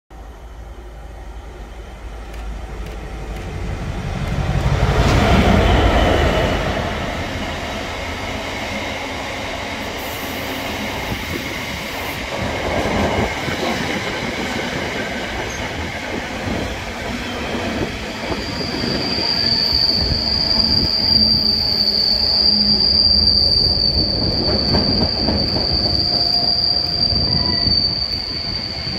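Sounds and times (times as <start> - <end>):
diesel locomotive passing: 0.2 - 28.9
train wheels rumbling on rail: 0.2 - 28.9
high wheel squeal: 17.6 - 28.9.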